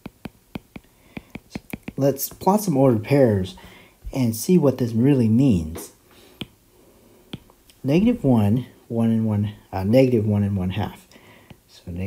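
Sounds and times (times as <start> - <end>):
stylus tapping on tablet screen: 0.0 - 2.5, 6.4 - 6.6, 7.3 - 7.6.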